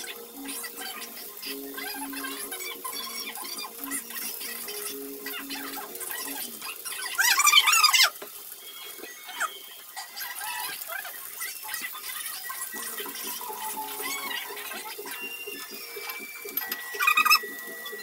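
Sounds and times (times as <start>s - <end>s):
okra sizzling in oil: 0.0s - 18.0s.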